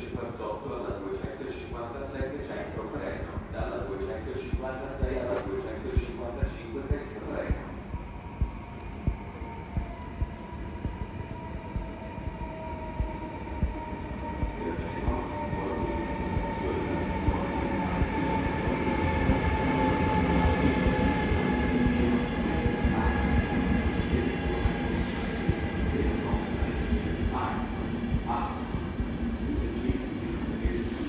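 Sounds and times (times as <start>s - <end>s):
passenger train rumble and whine: 0.0s - 31.0s.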